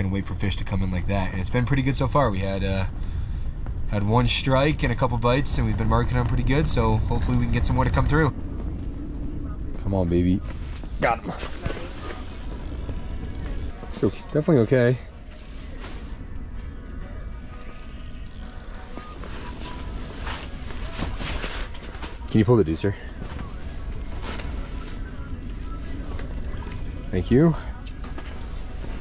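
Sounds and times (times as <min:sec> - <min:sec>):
low wind rumble: 0:00.0 - 0:29.0.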